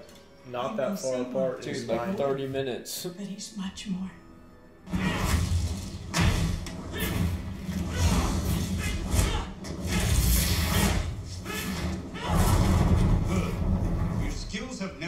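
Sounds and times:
fire blasts whooshing: 4.9s - 14.6s.

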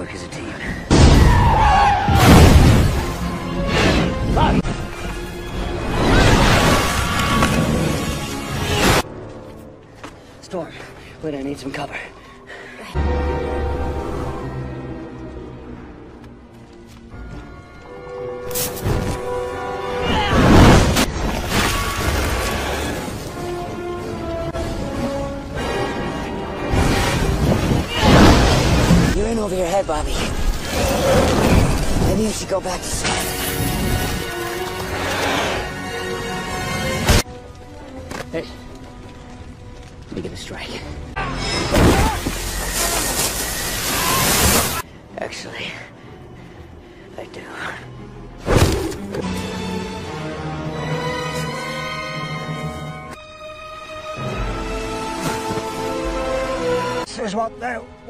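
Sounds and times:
dramatic film score: 0.0s - 58.0s.

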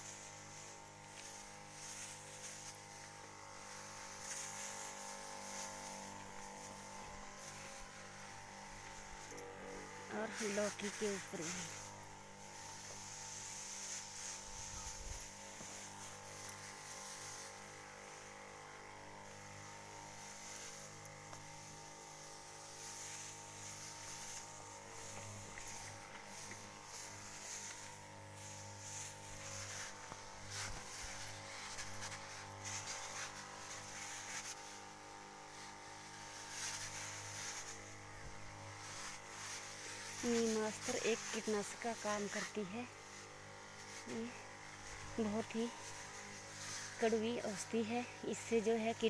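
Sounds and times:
crop sprayer humming drone: 0.0s - 49.0s
spray hissing: 0.0s - 49.0s.

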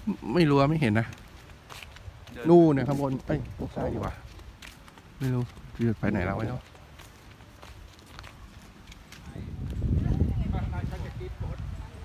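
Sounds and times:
footsteps on hard ground: 0.0s - 12.0s
wind rumble on microphone: 7.8s - 12.0s.

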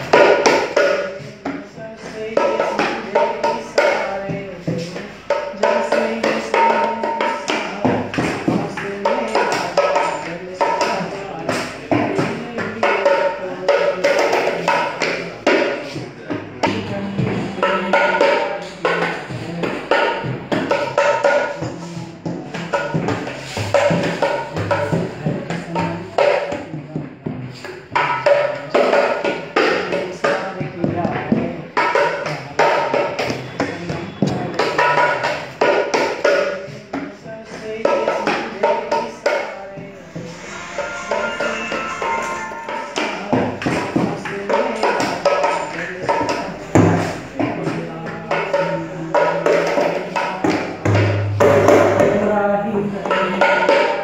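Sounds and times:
man singing: 0.0s - 54.0s
hand drum strokes: 39.8s - 47.8s.

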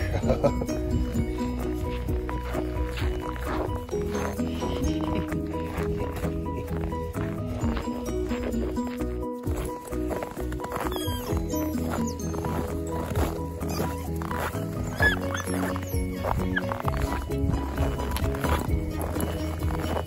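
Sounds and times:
background music with bass line: 0.0s - 20.0s.

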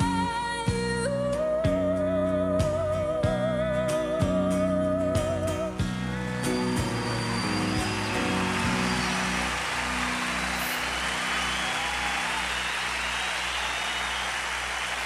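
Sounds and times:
audience applauding and cheering: 6.2s - 15.0s.

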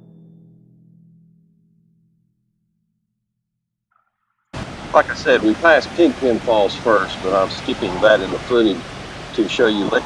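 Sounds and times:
rushing outdoor noise: 4.6s - 10.0s.

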